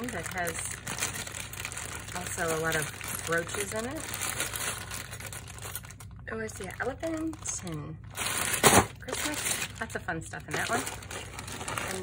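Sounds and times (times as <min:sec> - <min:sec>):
bag crinkling: 0:00.0 - 0:12.0.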